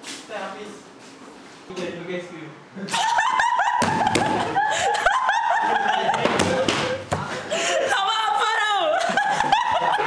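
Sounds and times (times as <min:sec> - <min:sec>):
person laughing hard: 0:08.9 - 0:10.0.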